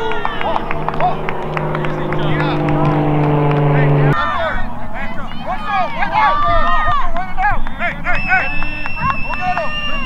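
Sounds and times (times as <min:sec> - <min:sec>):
mechanical motor hum: 0:00.0 - 0:05.2
overlapping voices: 0:00.0 - 0:10.0.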